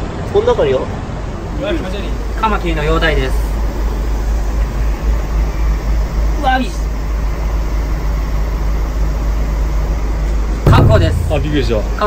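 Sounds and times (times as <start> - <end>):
steady low rumble: 2.1 - 12.0.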